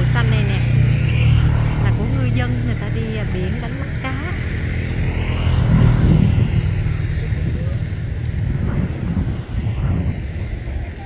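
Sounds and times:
vehicle passing by: 0.0s - 11.0s.

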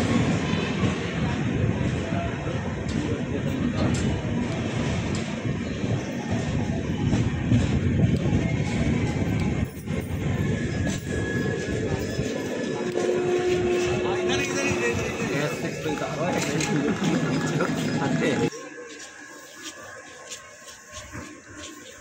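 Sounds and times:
train wheels rumbling on track: 0.0s - 18.5s.

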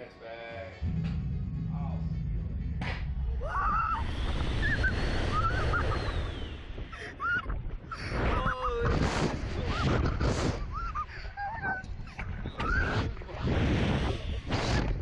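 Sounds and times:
heavy rumble: 0.7s - 15.0s
wind buffeting microphone: 3.1s - 15.0s
riders shrieking and laughing: 3.5s - 13.2s.

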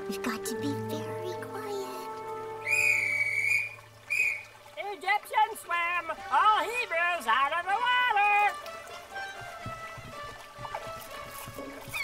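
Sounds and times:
high whistle-like tone: 2.6s - 4.5s.

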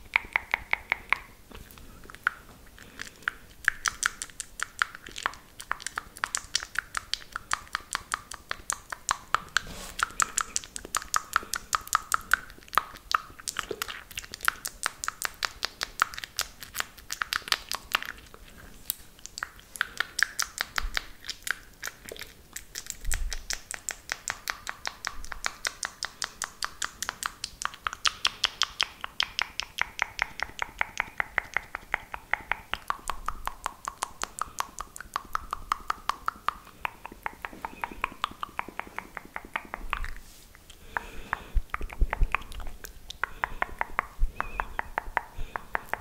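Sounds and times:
wet mouth clicks and smacks: 0.0s - 46.0s.

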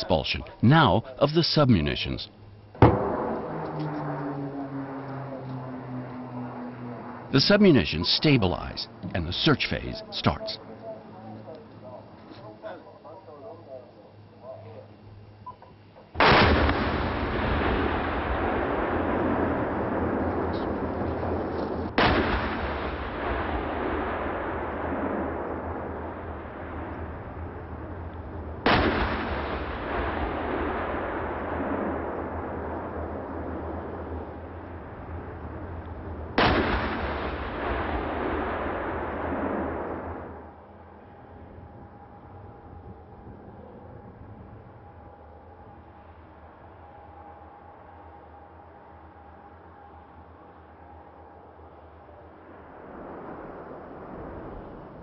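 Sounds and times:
explosive blasts with rolling rumble: 1.8s - 10.5s, 16.2s - 47.0s, 51.7s - 55.0s.

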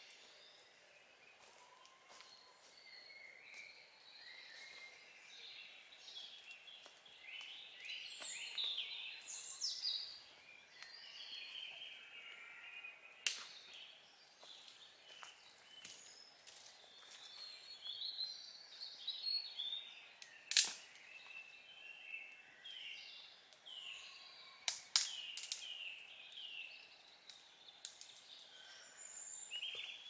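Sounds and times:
songbirds singing: 0.0s - 30.0s
sharp cracks: 20.5s - 20.8s.

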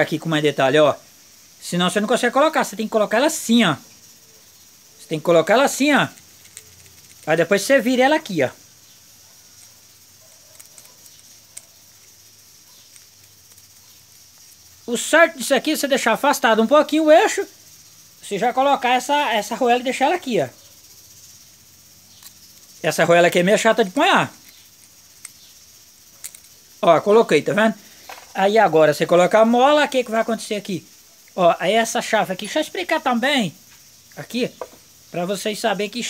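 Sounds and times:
faint high hiss: 0.0s - 36.0s
person speaking: 1.6s - 3.9s, 5.0s - 8.6s, 14.4s - 17.6s, 18.2s - 20.6s, 22.7s - 24.5s, 26.8s - 36.0s
small metallic clicks: 6.1s - 7.4s, 9.5s - 14.7s, 22.1s - 22.8s, 24.3s - 26.7s.

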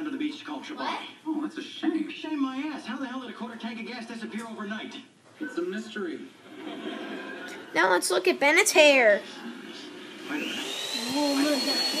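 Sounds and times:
vacuum cleaner motor whine: 10.1s - 12.0s.

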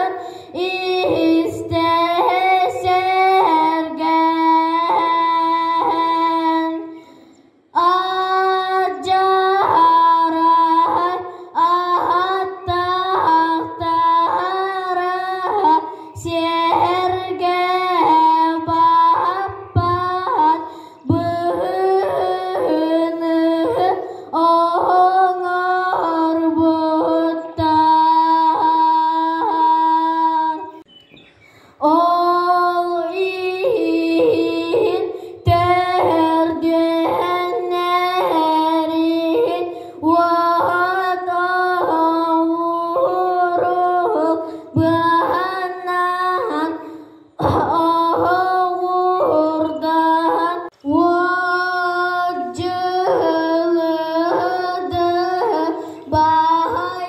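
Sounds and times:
boy singing high long notes: 0.0s - 7.1s, 7.7s - 30.8s, 31.8s - 57.0s.

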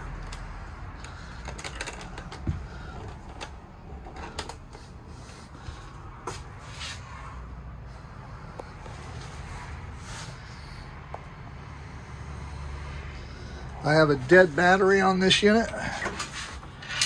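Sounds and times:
footsteps and handling knocks: 1.3s - 5.0s.

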